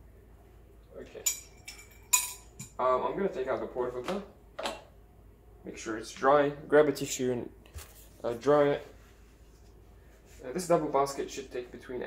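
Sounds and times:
metal and ceramic clinks: 1.2 - 2.7.

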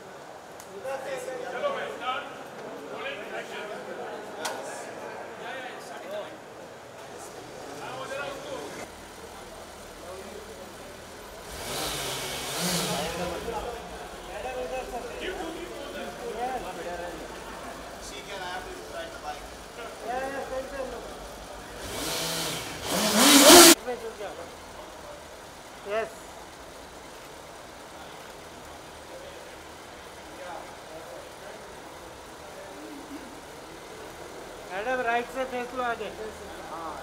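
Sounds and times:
loud rushing hiss: 11.4 - 15.8, 21.6 - 23.9.

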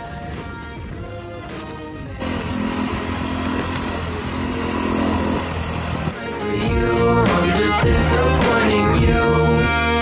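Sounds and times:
road and wind noise: 0.0 - 6.2
dirt bike engine running: 2.2 - 6.2.

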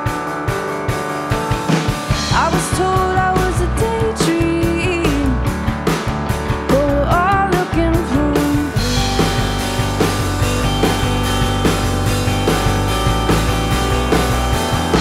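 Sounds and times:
bass guitar: 0.0 - 15.0
drum kit: 0.0 - 15.0
keyboard: 0.0 - 15.0
woman singing: 2.2 - 5.5, 6.7 - 9.1.

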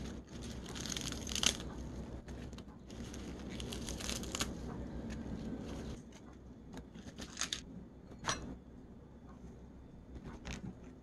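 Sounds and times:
wet crackling and scraping: 0.0 - 7.7.

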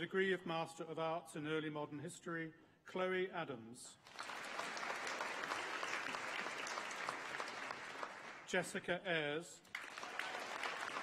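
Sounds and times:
audience applauding: 4.1 - 8.6, 9.6 - 11.0.

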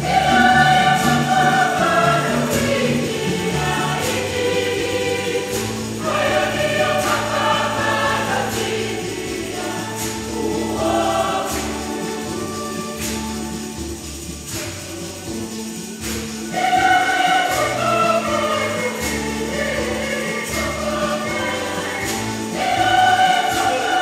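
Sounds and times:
light percussion stroke: 0.0 - 24.0
low steady accompaniment: 0.0 - 24.0
women's choir singing a hymn: 0.0 - 24.0.

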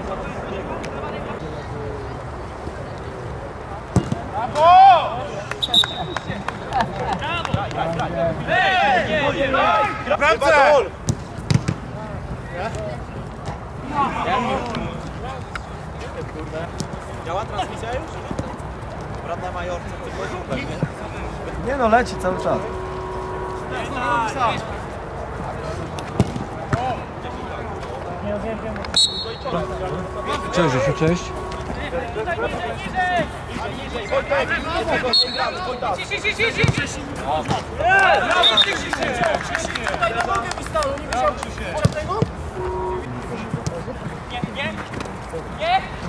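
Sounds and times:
players calling out: 4.0 - 11.0, 19.6 - 44.6
steady low rumble: 20.9 - 26.6.

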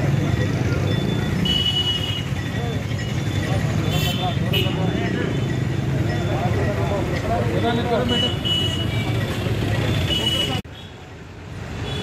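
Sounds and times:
people talking: 0.0 - 1.4, 2.4 - 10.6.

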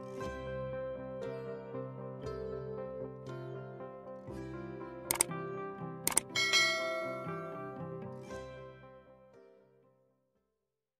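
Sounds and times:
soft plucked background music: 0.0 - 10.1
sharp clicks: 5.1 - 5.3, 6.1 - 6.3
bright bell chime: 6.3 - 7.6.

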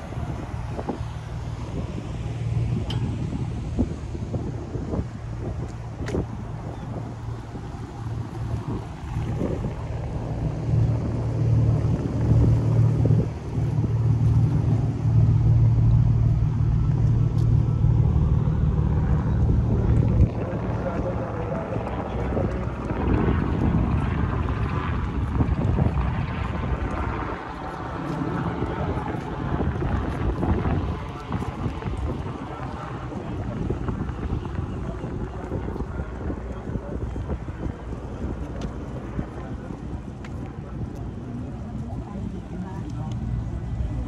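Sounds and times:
boat engine droning: 0.0 - 44.0
wind on microphone: 0.0 - 44.0
people talking: 16.2 - 44.0.

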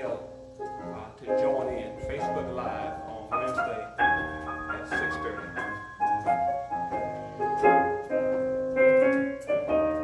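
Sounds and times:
sustained keyboard chords: 0.0 - 10.0.

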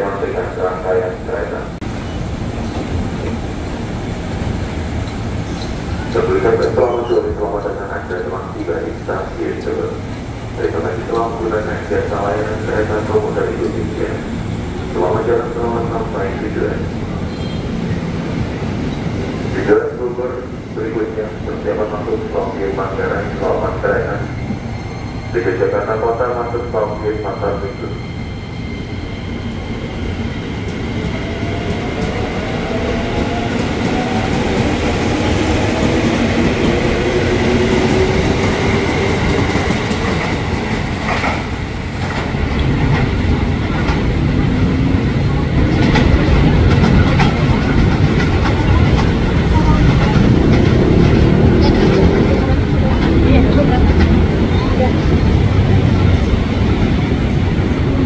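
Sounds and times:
train rumbling: 0.0 - 58.0.

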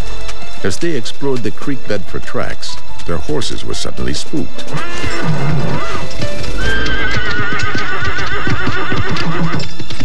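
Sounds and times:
background music: 0.0 - 10.0
hoofbeats: 0.0 - 10.0
horse whinnying: 4.7 - 9.8.

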